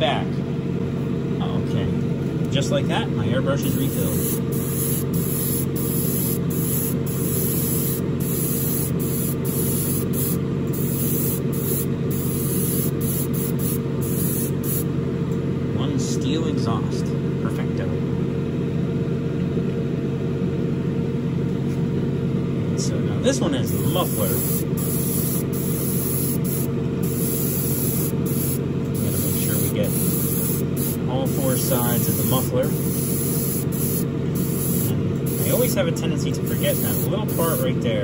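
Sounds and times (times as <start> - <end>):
steady low hum: 0.0 - 38.0
airbrush spraying hisses: 3.7 - 14.8, 23.7 - 35.7, 36.5 - 37.7.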